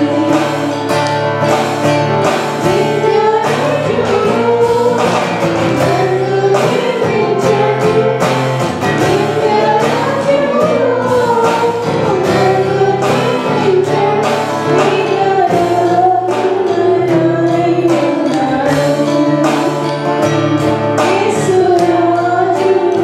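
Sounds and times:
group singing worship song: 0:00.0 - 0:23.0
instrumental accompaniment with beat: 0:00.0 - 0:23.0.

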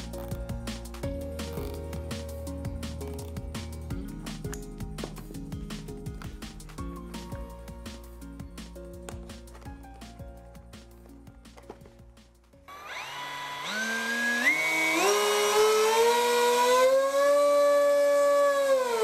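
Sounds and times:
background music: 0:00.0 - 0:12.7
electric motor whine: 0:12.7 - 0:19.0.

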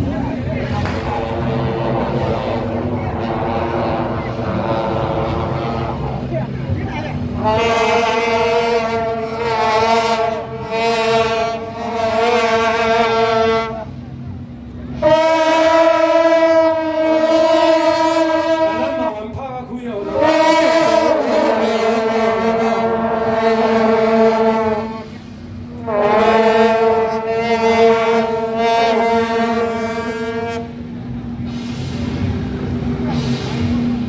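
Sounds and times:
long brass horns blasting: 0:00.0 - 0:34.0.

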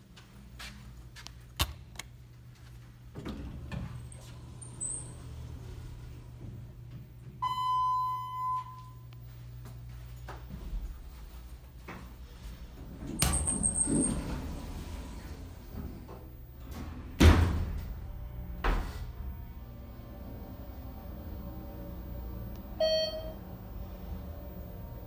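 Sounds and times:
elevator low hum: 0:00.0 - 0:25.0
elevator doors sliding shut: 0:03.0 - 0:08.4, 0:11.9 - 0:25.0
elevator chime: 0:03.3 - 0:09.2, 0:12.3 - 0:25.0
high beep: 0:07.4 - 0:09.0, 0:21.7 - 0:23.4.

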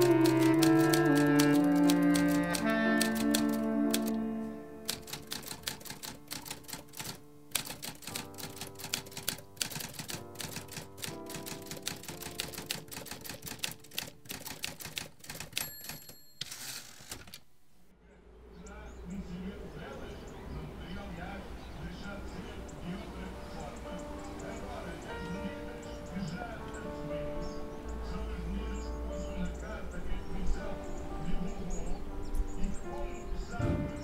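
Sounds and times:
typewriter keys clacking: 0:00.0 - 0:04.2, 0:04.9 - 0:17.5
soft sustained music: 0:00.0 - 0:15.8, 0:17.9 - 0:34.0.

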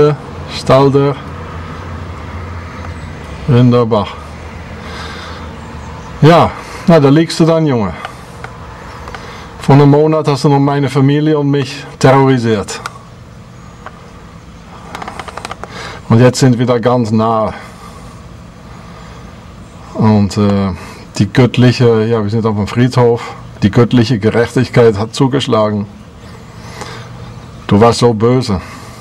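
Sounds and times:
person speaking: 0:06.2 - 0:08.5, 0:09.2 - 0:13.0, 0:14.8 - 0:17.8, 0:19.9 - 0:26.0.

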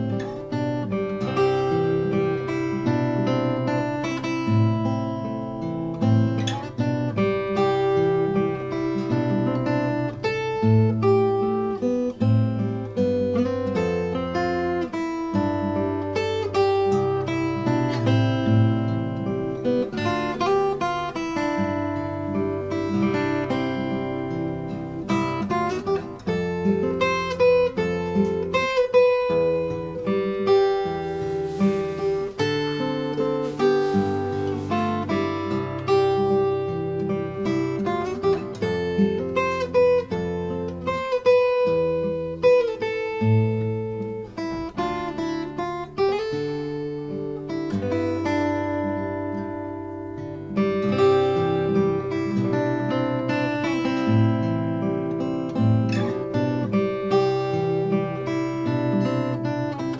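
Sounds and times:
fingerstyle acoustic guitar: 0:00.0 - 0:59.9.

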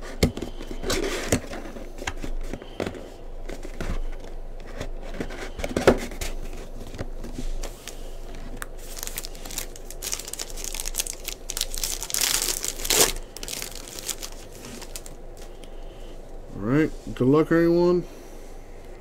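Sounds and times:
foil wrapper crinkling: 0:07.7 - 0:15.8
foil wrapper tearing: 0:08.6 - 0:15.5.

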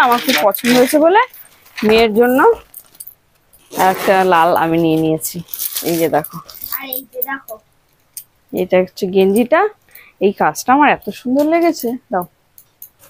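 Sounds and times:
plastic wrapping crinkling: 0:00.0 - 0:07.3.

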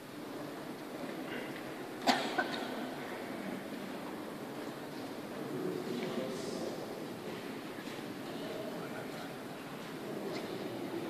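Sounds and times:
procession moving in a church: 0:00.0 - 0:11.0.

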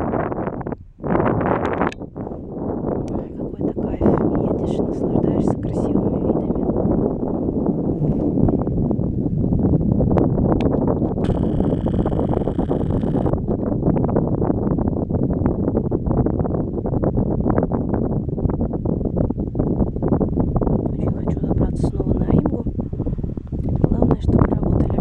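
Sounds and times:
wind buffeting microphone: 0:00.0 - 0:25.0.

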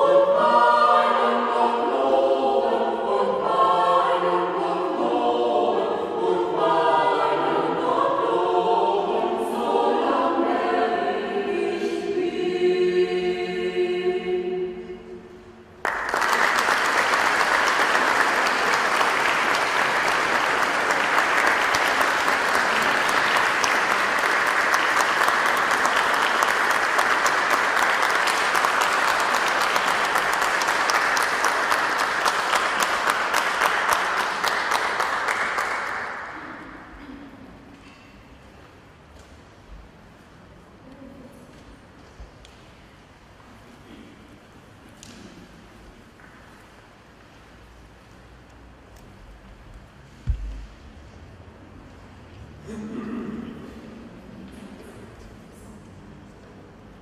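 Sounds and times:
mixed choir singing: 0:00.0 - 0:37.0
audience applause: 0:15.8 - 0:36.5.

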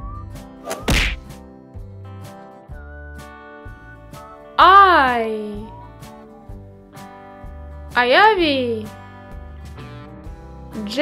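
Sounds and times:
light background music: 0:00.0 - 0:11.0
cartoon whack sound effect: 0:00.7 - 0:01.3.

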